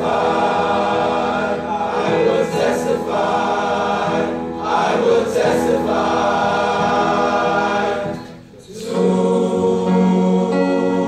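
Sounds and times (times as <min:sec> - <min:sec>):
male choir singing: 0:00.0 - 0:11.0.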